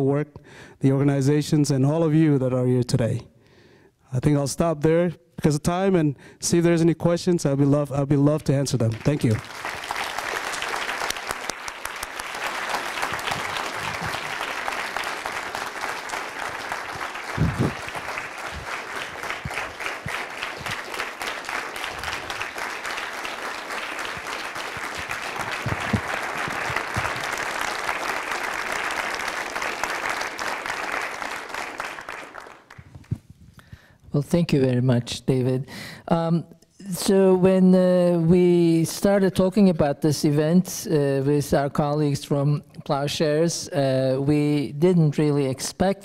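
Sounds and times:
audience applauding: 0:08.8 - 0:33.2.

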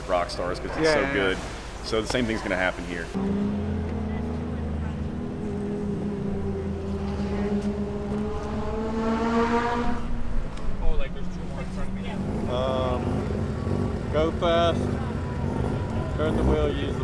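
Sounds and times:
car engine running: 0:03.2 - 0:17.0.

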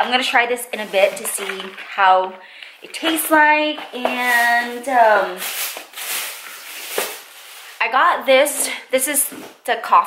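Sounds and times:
rustling groceries: 0:00.0 - 0:09.8.

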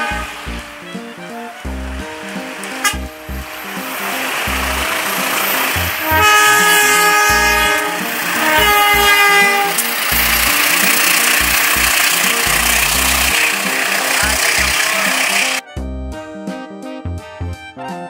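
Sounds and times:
loud rushing noise: 0:00.0 - 0:15.6
locomotive air horn blasts: 0:00.0 - 0:15.9
music with bass beat: 0:00.0 - 0:18.0.

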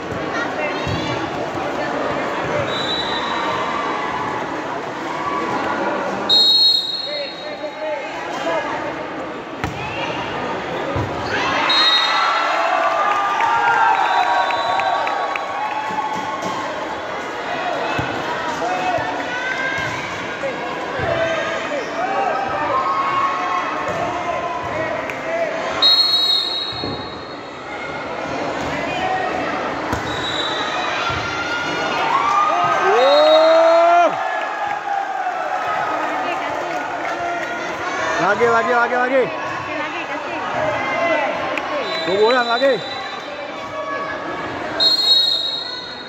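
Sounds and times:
whistle blast: 0:02.7 - 0:03.5, 0:06.3 - 0:07.6, 0:25.8 - 0:27.4, 0:30.0 - 0:30.7, 0:44.8 - 0:46.0.

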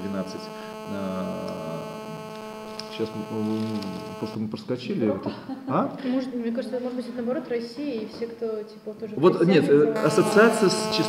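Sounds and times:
electrical hum: 0:00.0 - 0:04.5, 0:10.0 - 0:11.0.

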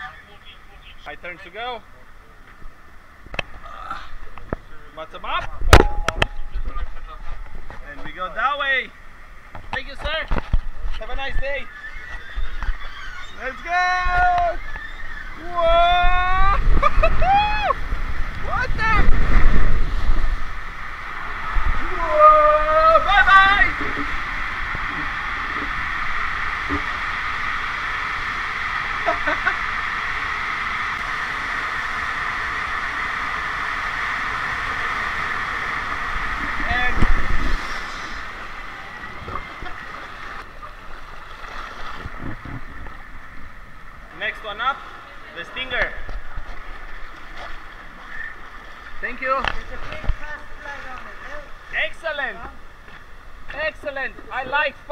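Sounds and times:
water rushing down slide: 0:11.2 - 0:52.6
person shouting: 0:21.9 - 0:23.7.

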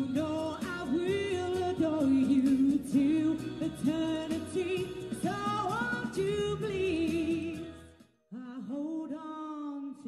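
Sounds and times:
musical accompaniment with steady beat: 0:00.0 - 0:08.6
woman singing with vibrato: 0:00.0 - 0:10.0.

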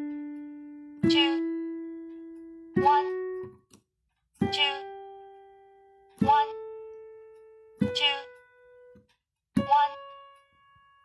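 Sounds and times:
piano playing a slow scale: 0:00.0 - 0:03.7, 0:04.4 - 0:11.0.

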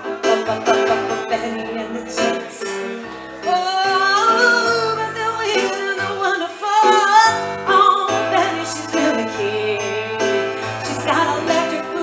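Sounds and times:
electric keyboard playing: 0:00.0 - 0:12.0
woman singing: 0:00.0 - 0:12.0.

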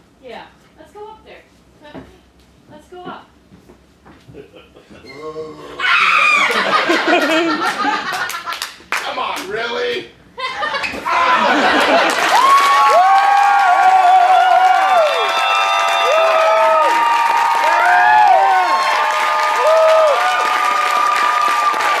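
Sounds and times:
voices whooping: 0:05.6 - 0:06.8, 0:11.0 - 0:22.0
crowd cheering: 0:05.8 - 0:09.2, 0:11.0 - 0:22.0
audience applauding: 0:06.2 - 0:09.5, 0:11.1 - 0:22.0.

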